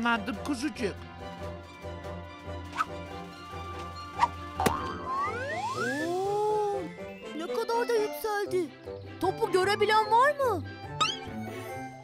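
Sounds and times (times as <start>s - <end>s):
cartoon swooping tones: 5.1s - 6.4s.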